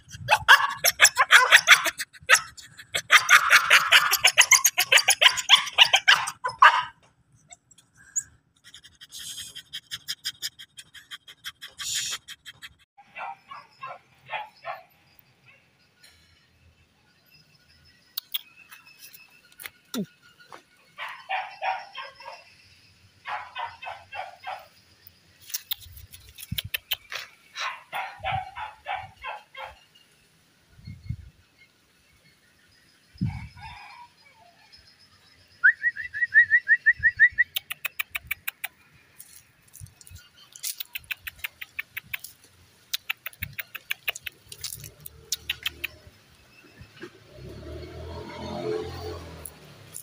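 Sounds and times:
sharp clicks: 18.2 - 18.5, 25.4 - 27.2, 37.4 - 38.8, 39.8 - 46.1
birds chattering: 25.5 - 30.0, 37.4 - 47.2.

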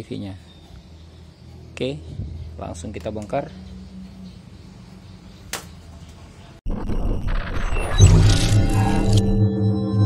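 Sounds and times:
synth music: 6.7 - 10.0.

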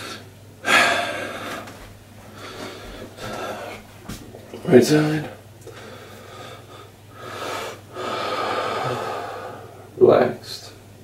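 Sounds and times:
man breathing heavily: 0.0 - 4.0, 5.6 - 9.9.

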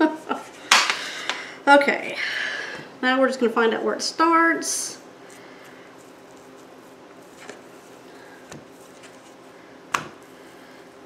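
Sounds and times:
soft dough handling sounds: 5.1 - 11.0.

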